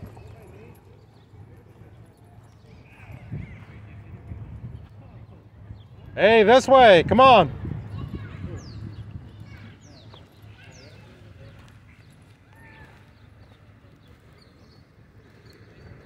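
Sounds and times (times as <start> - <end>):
distant voices: 0.0 - 16.0.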